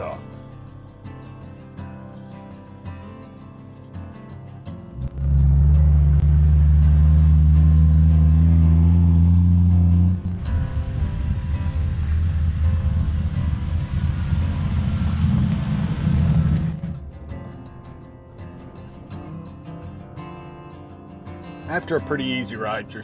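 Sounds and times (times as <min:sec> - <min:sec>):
vehicle driving on gravel: 0:04.9 - 0:17.0
car engine droning: 0:04.9 - 0:17.2.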